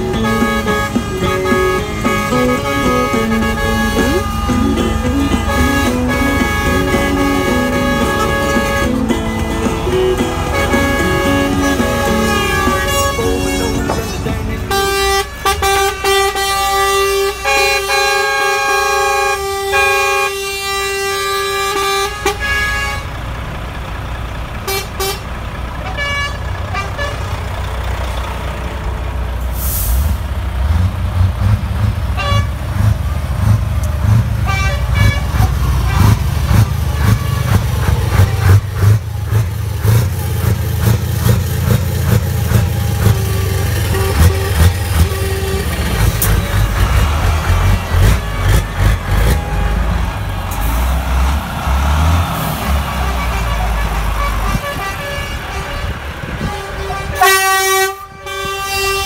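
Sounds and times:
truck horn toots: 0.0 - 23.3, 24.6 - 27.5, 31.4 - 59.0
truck diesel engines rumbling: 0.0 - 59.0.

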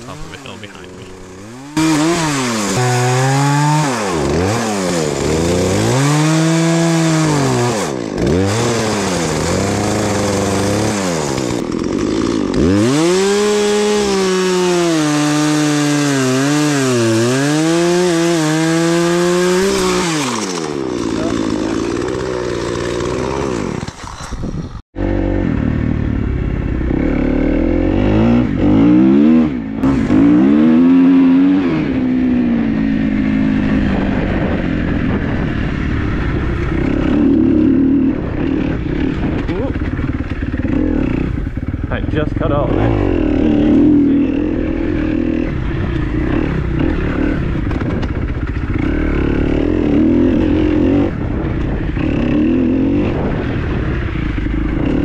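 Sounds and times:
chainsaw revving: 0.0 - 25.7, 26.9 - 32.3, 36.6 - 55.0
off-road vehicle engine: 0.0 - 55.0.

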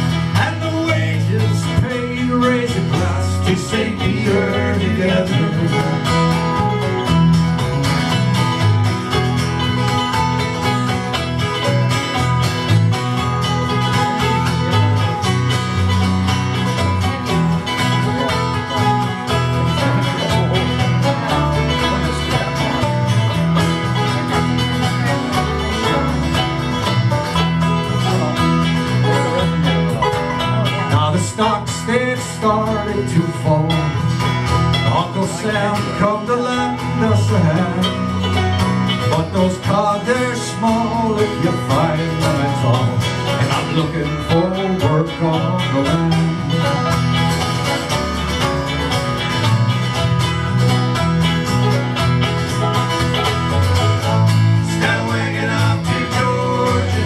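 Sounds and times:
acoustic guitar: 0.0 - 57.0
banjo: 0.0 - 57.0
mandolin: 0.0 - 57.0.

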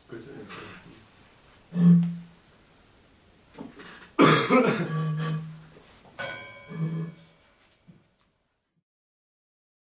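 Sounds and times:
low voiced throat sound: 1.7 - 2.3, 4.2 - 5.6, 6.7 - 7.2
man coughing harshly: 4.2 - 5.0.

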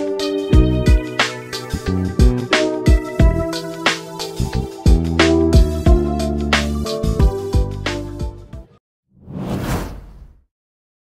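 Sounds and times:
whoosh sound effect: 9.2 - 10.5.

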